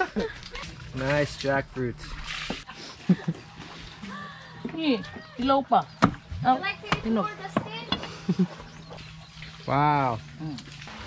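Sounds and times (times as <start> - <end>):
voices: 3.9 - 8.6, 9.6 - 10.8.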